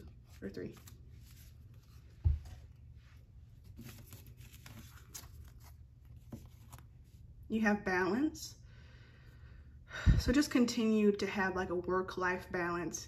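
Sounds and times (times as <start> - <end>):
cards rustling and sliding: 3.5 - 7.2.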